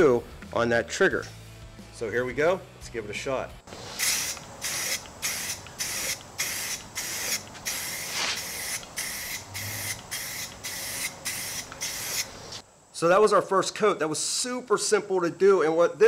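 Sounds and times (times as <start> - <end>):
spray paint can hissing: 3.7 - 12.6.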